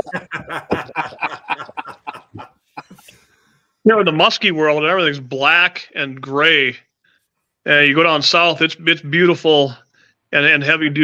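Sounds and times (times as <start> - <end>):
men laughing: 0.0 - 3.2.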